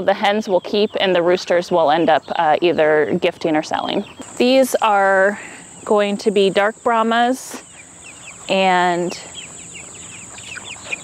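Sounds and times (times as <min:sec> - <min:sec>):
chicks peeping: 0:00.0 - 0:11.0
crickets droning: 0:04.2 - 0:11.0.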